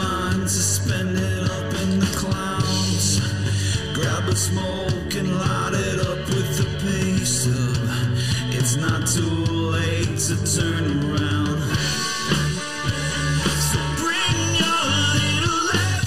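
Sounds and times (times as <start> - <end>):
bass and drums: 0.0 - 16.0
distorted electric guitar: 0.0 - 16.0
person singing: 0.0 - 16.0.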